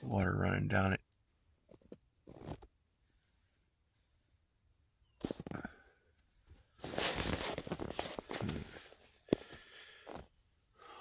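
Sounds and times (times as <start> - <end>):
fabric and bedding rustling: 6.6 - 9.2.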